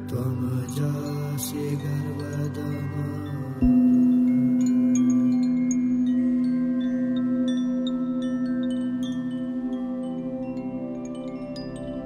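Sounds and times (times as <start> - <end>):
chimes tinkling: 0.0 - 12.0.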